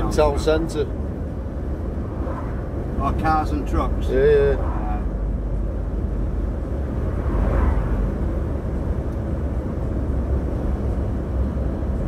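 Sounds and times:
lorry engine rumble: 0.0s - 12.0s
road noise: 0.0s - 12.0s.

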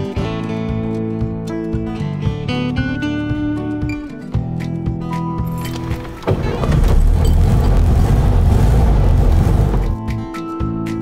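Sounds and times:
car engine running: 5.8s - 10.0s.

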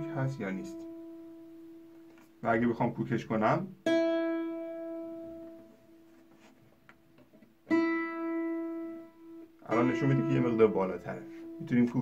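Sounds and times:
guitar string plucked: 7.4s - 12.0s.

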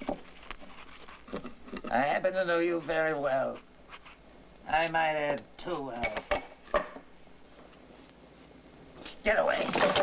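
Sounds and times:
person speaking: 1.8s - 3.7s, 4.6s - 6.3s, 9.0s - 10.0s.

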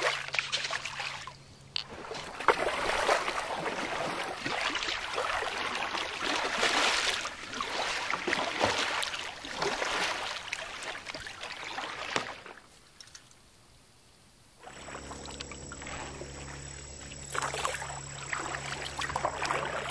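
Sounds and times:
paddle stroke splashes: 0.0s - 12.8s, 14.6s - 19.9s
stream water rushing: 14.6s - 19.9s.

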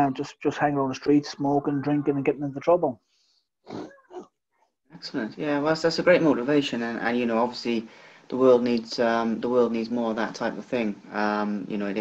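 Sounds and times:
faint hiss: 5.0s - 12.0s.

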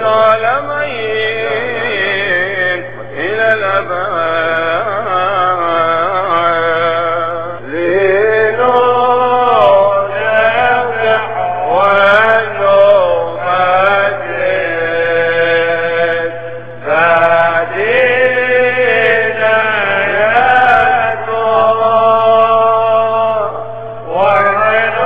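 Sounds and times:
man singing liturgical chant: 0.0s - 25.0s.

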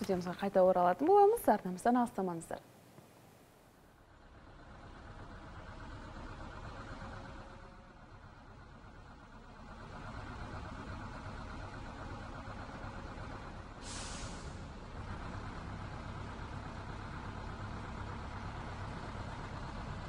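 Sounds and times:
bus engine rumbling past: 4.0s - 20.0s.

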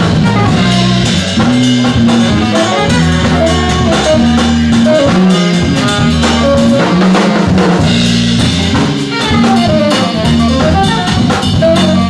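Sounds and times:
saxophone playing quick notes: 0.0s - 7.4s, 8.4s - 12.0s
drum kit with cymbals: 0.0s - 12.0s
low bass notes: 0.0s - 12.0s.

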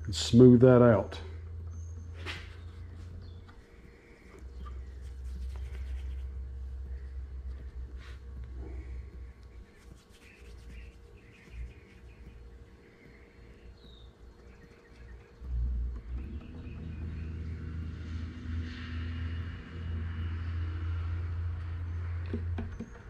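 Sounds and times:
steady low rumble: 0.0s - 22.7s
faint bird chirps: 1.6s - 6.3s, 8.7s - 18.8s.

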